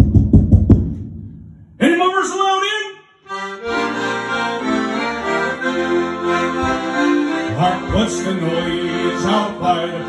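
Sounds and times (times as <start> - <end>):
piano accordion melody: 3.2 - 10.0.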